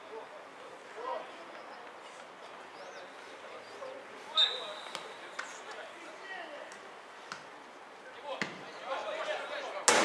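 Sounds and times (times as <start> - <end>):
faint players' voices: 0.0 - 10.0.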